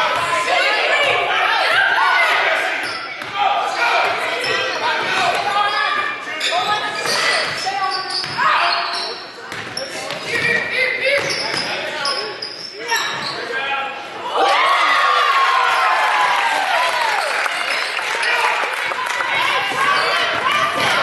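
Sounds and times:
people shouting and chatting: 0.0 - 21.0.

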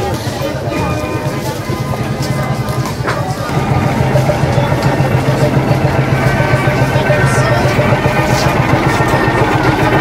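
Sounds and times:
engine idling: 1.7 - 10.0.

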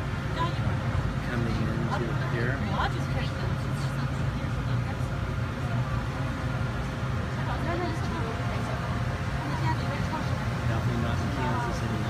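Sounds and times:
ferry engine drone: 0.0 - 12.0
passengers talking: 0.0 - 12.0.

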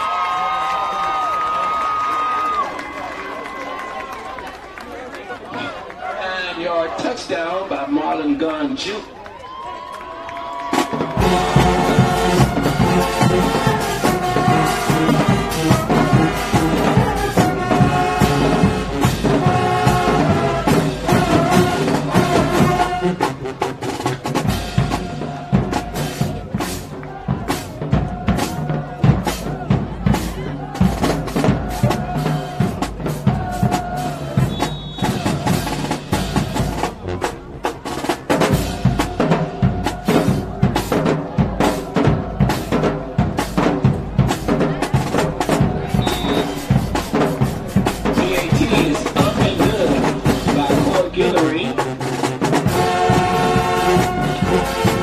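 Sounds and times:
bass and snare drums: 10.6 - 55.0
brass horns and sousaphones: 10.7 - 55.0.

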